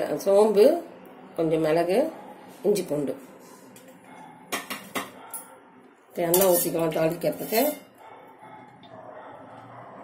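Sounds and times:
metal cookware clanking: 4.5 - 5.4, 6.2 - 7.9.

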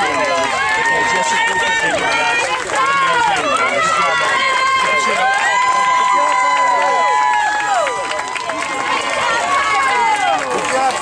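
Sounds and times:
children shouting: 0.0 - 10.6.

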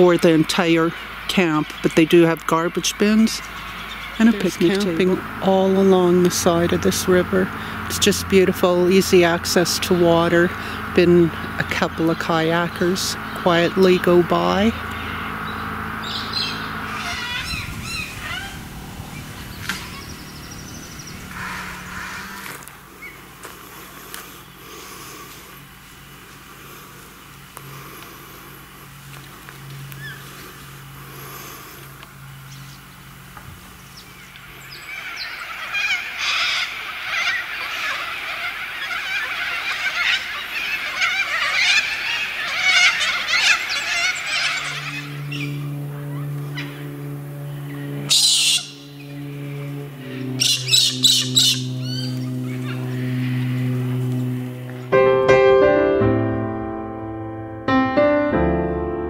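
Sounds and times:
flock of birds chattering: 0.0 - 54.9
low hum: 0.0 - 59.0
cockatoo screeching: 16.0 - 23.2, 34.9 - 46.8, 48.1 - 48.8, 50.1 - 53.4
piano music: 54.8 - 59.0.

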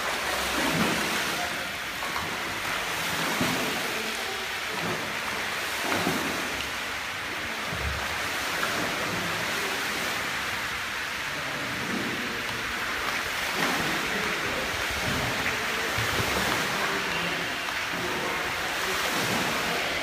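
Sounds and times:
water splashing from swimmers: 0.0 - 20.0.

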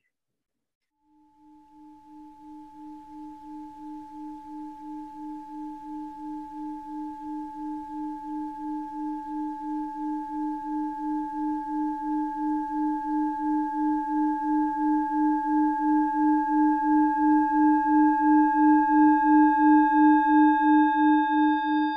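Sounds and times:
singing bowl ringing: 1.1 - 21.9.

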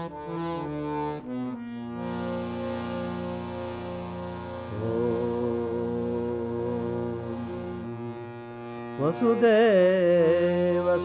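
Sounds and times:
person chanting: 4.6 - 8.4
droning held tones: 4.6 - 9.4.

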